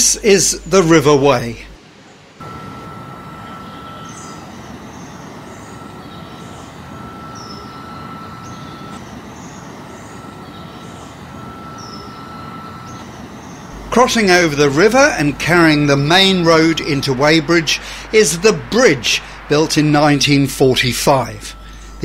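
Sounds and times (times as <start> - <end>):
thin whistle-like tone: 2.4 - 22.0
high bird chirps: 3.3 - 22.0
steady rushing noise: 13.5 - 22.0.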